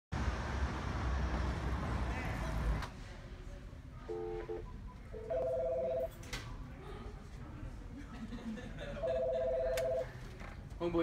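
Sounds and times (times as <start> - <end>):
road traffic rumble: 0.1 - 4.6.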